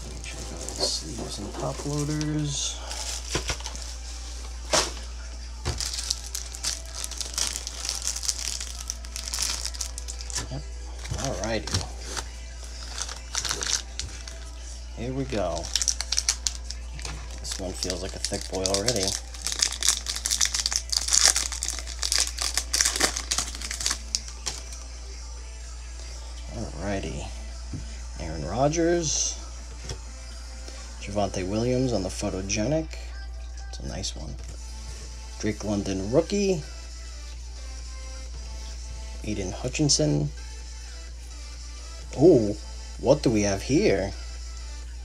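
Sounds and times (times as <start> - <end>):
plastic sleeves crinkling: 0.0 - 5.1, 5.7 - 14.6, 15.2 - 24.8.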